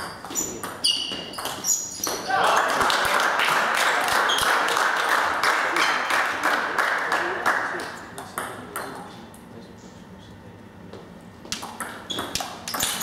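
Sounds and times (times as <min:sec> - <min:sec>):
table tennis ball bouncing: 0:00.0 - 0:02.3, 0:11.5 - 0:13.0.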